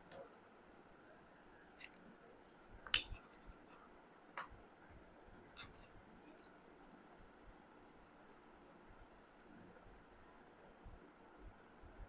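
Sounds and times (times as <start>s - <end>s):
cards clicking on stone tabletop: 2.8s - 3.2s.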